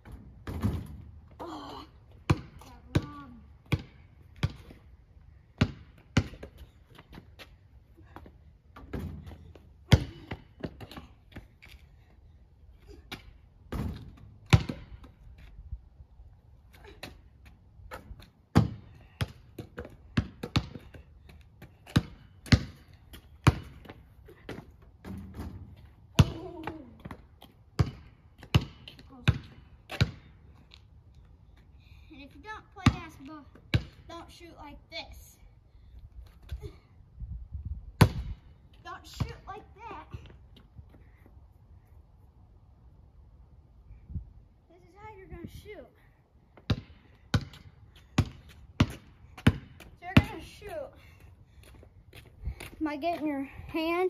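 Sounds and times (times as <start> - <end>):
basketball bouncing on asphalt: 0.0 - 1.4, 2.1 - 12.2, 13.0 - 15.6, 16.8 - 30.9, 32.4 - 34.4, 37.9 - 41.3, 46.5 - 54.0.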